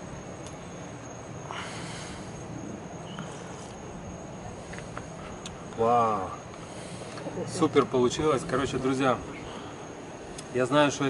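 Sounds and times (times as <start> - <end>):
steady low hiss: 0.0 - 11.0
thin high steady tone: 0.0 - 11.0.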